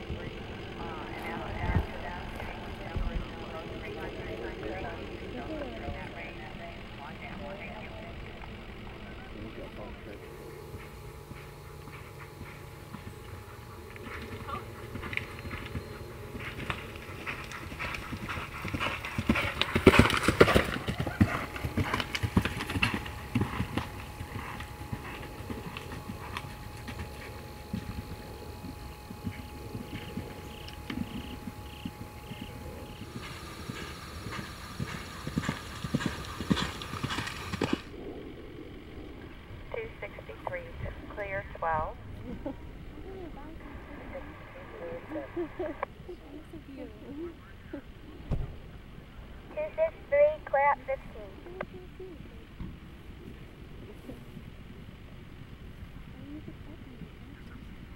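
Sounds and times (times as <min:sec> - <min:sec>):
horse hooves galloping on turf: 0:00.0 - 0:38.0.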